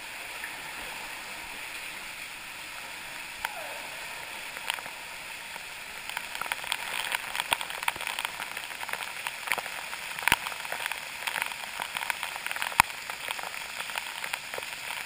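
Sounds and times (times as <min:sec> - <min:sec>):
rush of falling water: 0:00.0 - 0:15.0
water drips tapping on camera: 0:00.0 - 0:15.0.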